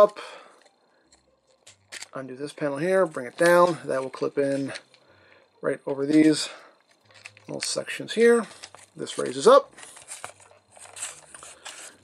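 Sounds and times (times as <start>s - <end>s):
plastic toy parts clicking: 0.6s - 2.2s, 6.8s - 7.8s.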